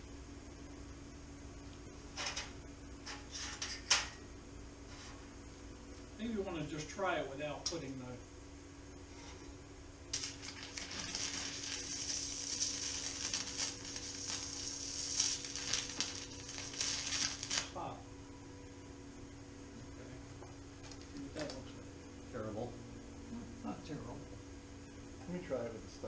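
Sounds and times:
welding arc crackling hiss: 1.6s - 4.2s, 10.1s - 18.1s.

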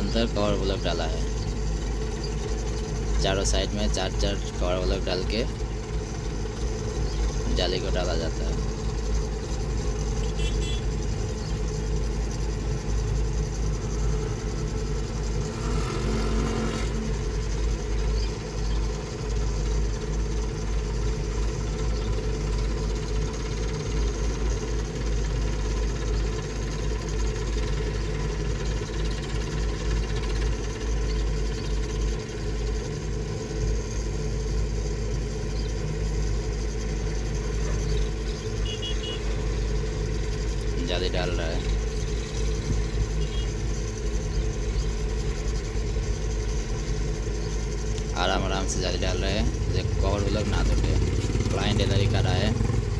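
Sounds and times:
diesel engine running: 0.0s - 52.9s.

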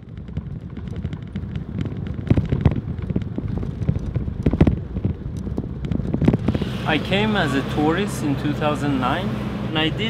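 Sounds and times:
vehicle rumbling on dirt road: 0.0s - 10.0s.

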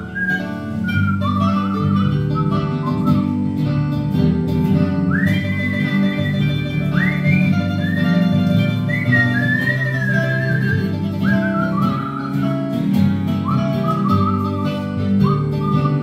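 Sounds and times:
whistle-like synth lead melody: 0.0s - 3.6s, 5.1s - 16.0s
plucked guitar-like keyboard chords: 0.0s - 16.0s.

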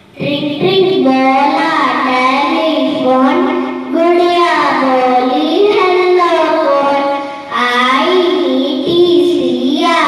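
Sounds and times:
girl singing into microphone: 0.1s - 10.0s.

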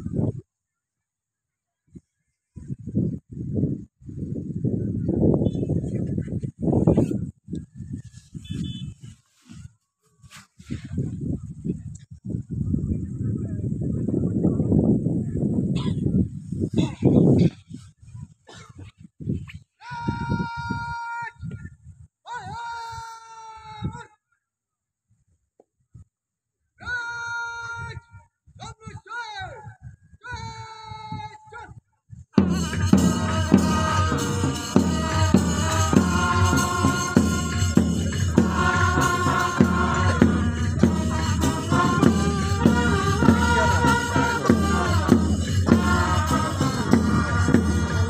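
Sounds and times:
low rumbling on microphone: 10.7s - 18.4s.

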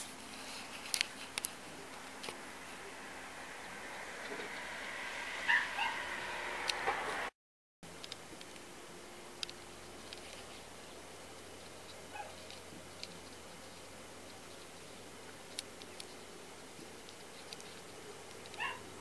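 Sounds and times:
steady low hiss: 0.0s - 5.4s, 6.1s - 19.0s
small clicks: 9.4s - 10.7s, 15.5s - 16.2s.

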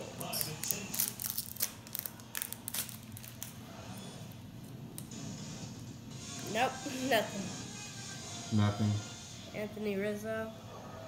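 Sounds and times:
foil wrapper crinkling: 0.2s - 3.6s.

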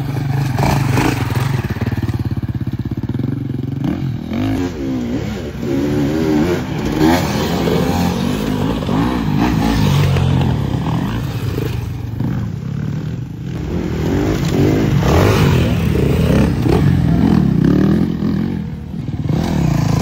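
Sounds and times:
motorcycle engines revving: 0.0s - 20.0s.

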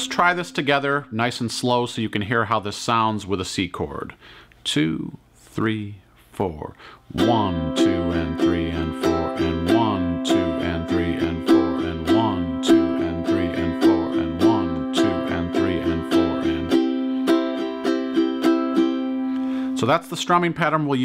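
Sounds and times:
ukulele strumming: 7.2s - 20.4s.

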